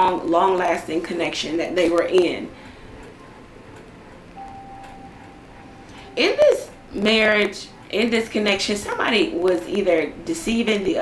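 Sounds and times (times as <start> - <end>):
faint steady high tone: 4.4 - 8.8.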